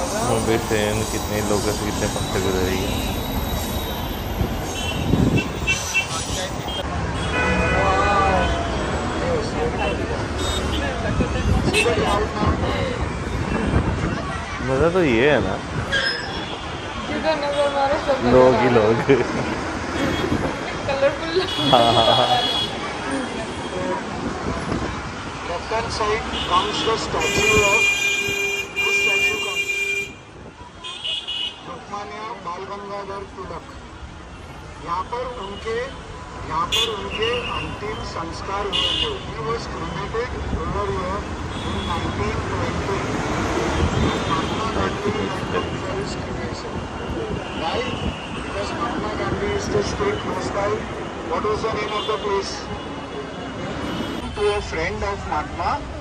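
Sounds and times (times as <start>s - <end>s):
passing vehicles: 0.0s - 56.0s
street traffic: 0.0s - 56.0s
voices: 16.9s - 28.0s.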